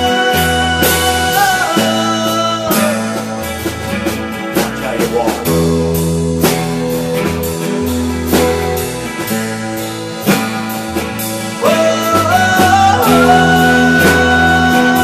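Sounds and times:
man singing: 0.0 - 5.7, 11.4 - 15.0
acoustic guitar strumming: 0.0 - 15.0
keyboard bass notes and chords: 0.0 - 15.0.

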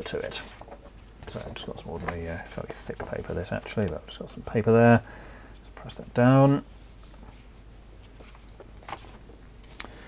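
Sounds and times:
paper rubbing on metal: 1.3 - 3.0.

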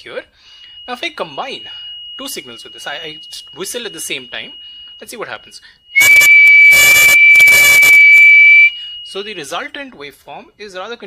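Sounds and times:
man whistling one steady note: 0.5 - 9.6
piezo buzzer tone: 6.0 - 8.9.

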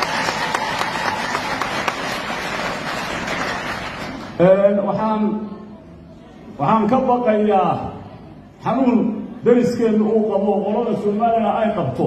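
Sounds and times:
audience applauding: 0.0 - 4.4.

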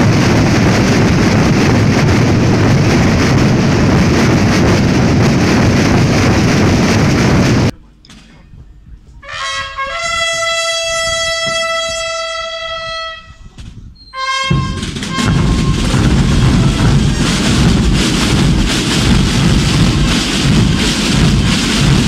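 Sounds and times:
drums rolling: 0.0 - 7.7, 14.4 - 22.0
brass instrument call: 9.2 - 13.5, 14.1 - 18.0.

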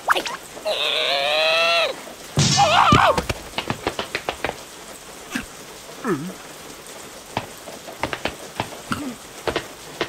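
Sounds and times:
steady rain falling: 0.0 - 10.0
heavy drops splatting: 2.4 - 4.6.

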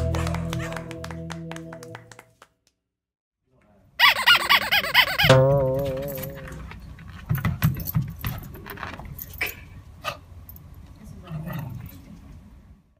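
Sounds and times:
sung note: 5.2 - 6.7.

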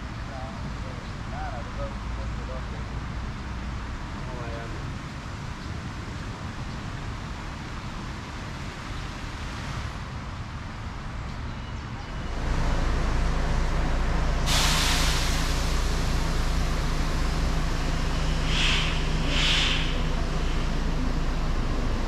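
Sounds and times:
hissing air rush: 14.3 - 22.0.

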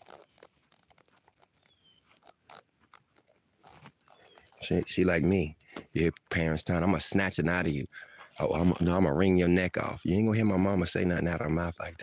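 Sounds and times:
faint high chirp: 1.6 - 2.2.

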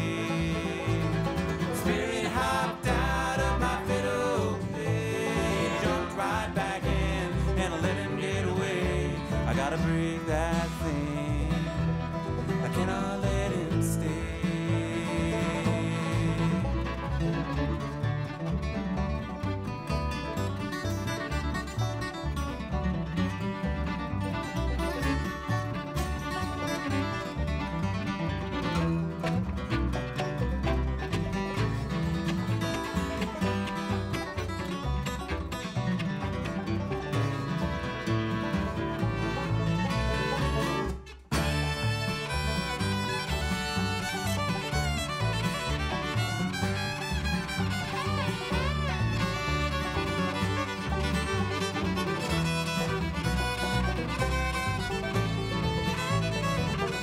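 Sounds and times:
acoustic guitar lead: 0.0 - 57.0
bluegrass string band playing: 0.0 - 57.0
fiddle sliding notes: 0.0 - 57.0.

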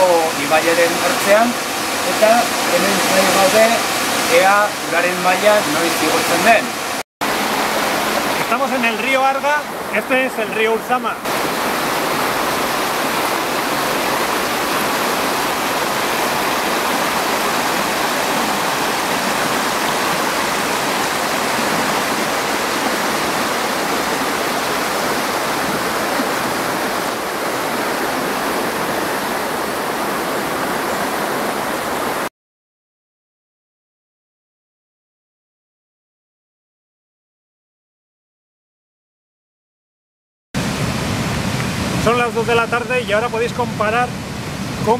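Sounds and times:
river rushing over rapids: 0.0 - 32.3, 40.6 - 44.9.

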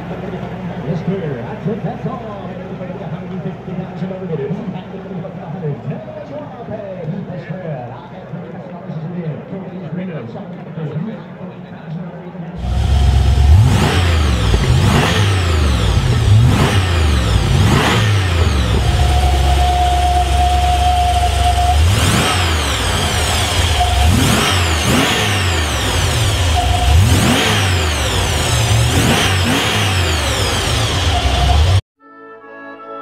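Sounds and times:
car engine revving: 12.6 - 31.8.

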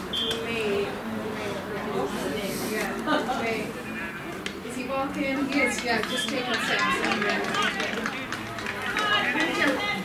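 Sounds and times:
people calling and chatting: 0.0 - 10.0.

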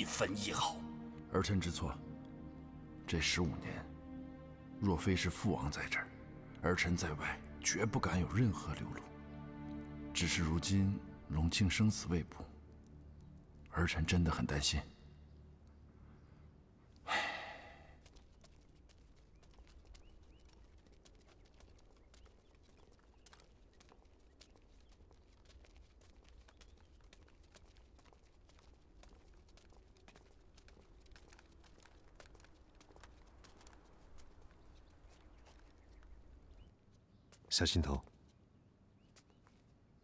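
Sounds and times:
footsteps on stone path: 0.0 - 14.0, 15.1 - 40.0
man sighing: 17.0 - 17.9.

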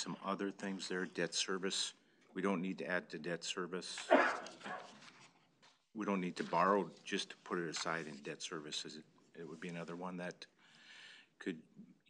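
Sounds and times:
person coughing: 4.1 - 4.9.

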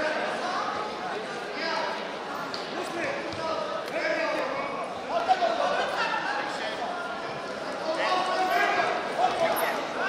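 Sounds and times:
voices shouting in a hall: 0.0 - 10.0.

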